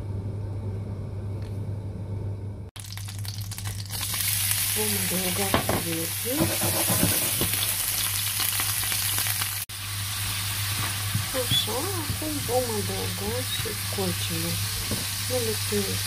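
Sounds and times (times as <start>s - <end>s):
shrimp sizzling in hot oil: 2.8s - 16.0s.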